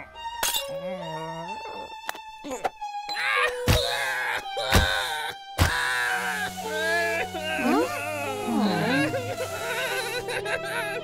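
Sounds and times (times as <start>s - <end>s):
cartoon character wailing and sobbing: 2.4s - 11.0s.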